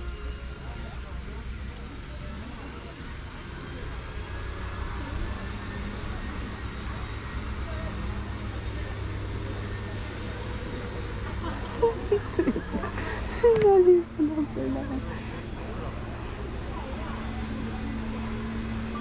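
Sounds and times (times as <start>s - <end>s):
utility cart motor rumble: 0.0s - 19.0s.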